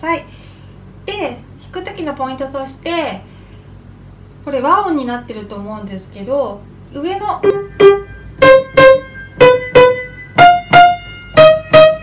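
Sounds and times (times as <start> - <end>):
piano chords: 7.4 - 12.0.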